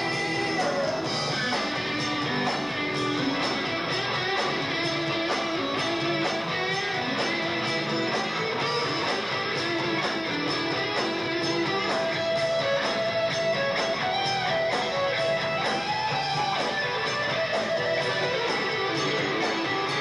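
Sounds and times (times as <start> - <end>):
bass: 0.0 - 20.0
drums: 0.0 - 20.0
electric guitar: 0.0 - 20.0.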